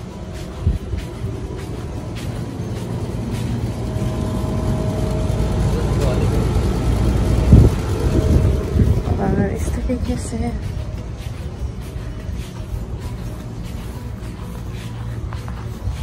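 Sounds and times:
vehicle engine rumble: 0.0 - 16.0.

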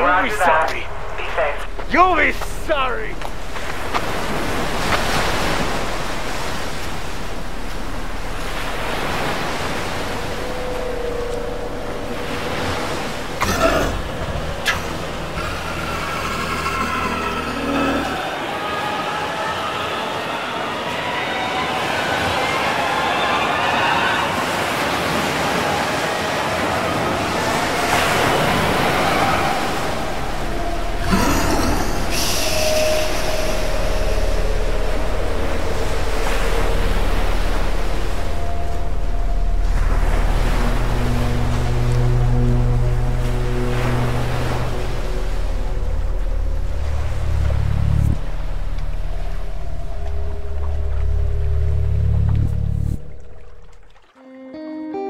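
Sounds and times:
droning film score: 0.0 - 54.9
ocean surf washing: 0.0 - 55.0
plucked guitar notes: 54.2 - 55.0.

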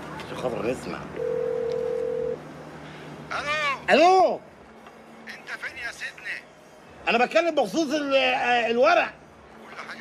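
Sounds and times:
phone ringback beep: 1.2 - 2.4.

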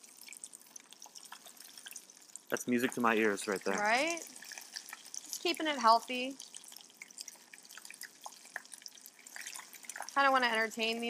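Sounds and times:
food deep-frying in oil: 0.0 - 11.0.

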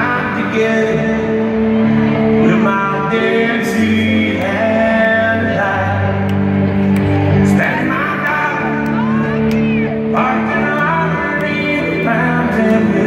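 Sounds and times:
country band playing live: 0.0 - 13.0
person singing: 0.0 - 13.0.

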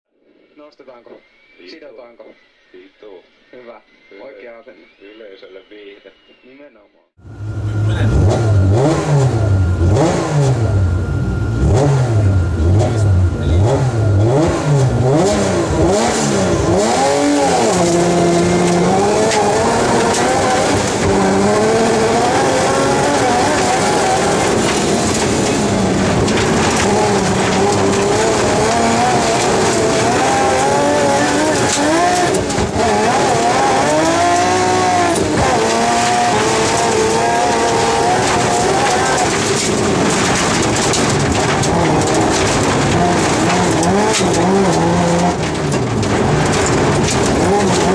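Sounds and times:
car engine revving: 7.2 - 47.9
tyre and road noise: 7.2 - 47.9.

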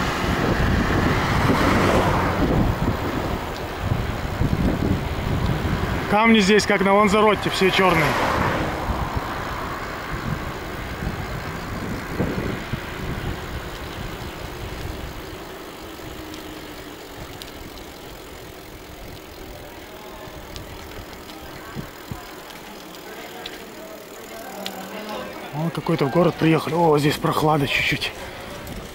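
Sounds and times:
car passing close: 0.0 - 18.5
road and wind noise: 0.0 - 28.9.

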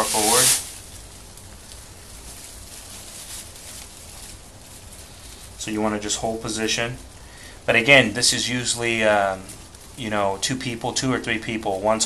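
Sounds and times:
faint rustles: 0.0 - 12.0
low steady hum: 0.0 - 12.0.

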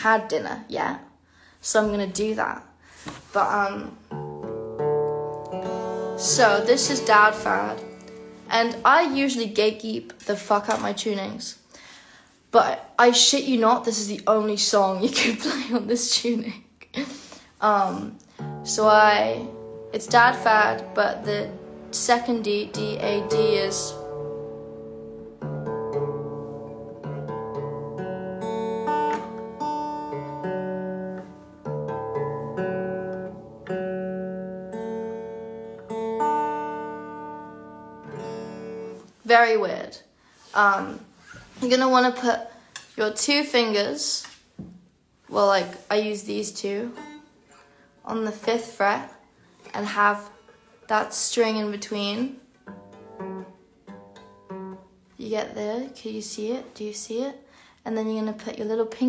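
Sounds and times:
guitar chords ringing: 3.8 - 9.0, 18.3 - 39.1, 52.5 - 55.0.

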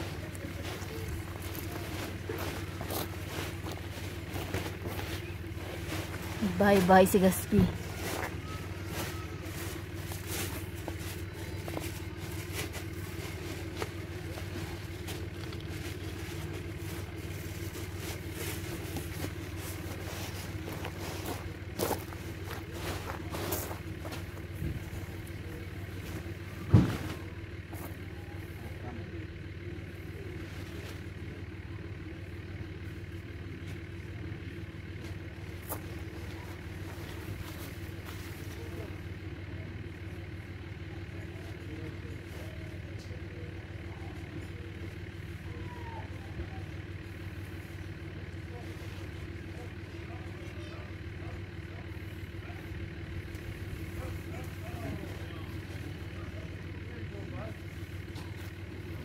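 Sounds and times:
low mechanical hum: 0.0 - 59.0.

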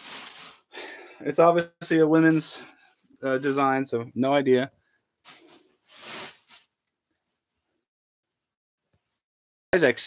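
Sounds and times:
clothing rustling: 0.0 - 0.7, 5.2 - 7.8.

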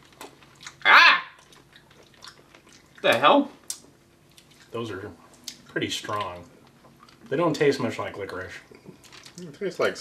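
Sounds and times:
chewing candy mouth clicks: 1.4 - 4.7.

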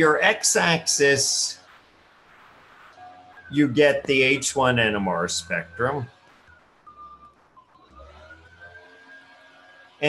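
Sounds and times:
faint high rising tone: 1.3 - 10.0.

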